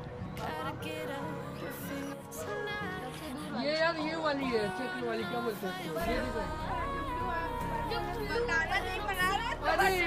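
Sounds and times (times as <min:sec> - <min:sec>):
faint background music: 0:00.0 - 0:10.0
people chattering and calling out: 0:00.0 - 0:10.0.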